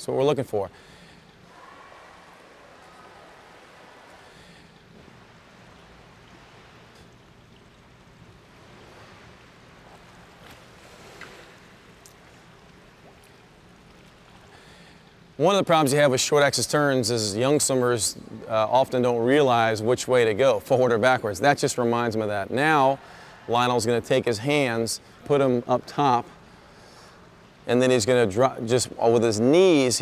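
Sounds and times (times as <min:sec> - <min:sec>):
swimming pool water noise: 0:00.0 - 0:30.0.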